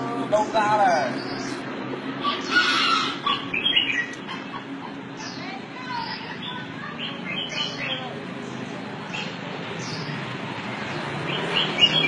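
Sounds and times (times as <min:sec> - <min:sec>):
rooster squawking: 0:02.2 - 0:04.8
rooster clucking: 0:02.2 - 0:05.0.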